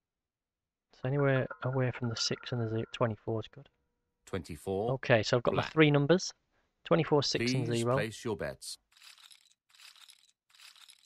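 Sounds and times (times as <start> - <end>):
faint clinking of chips: 9.0 - 11.0.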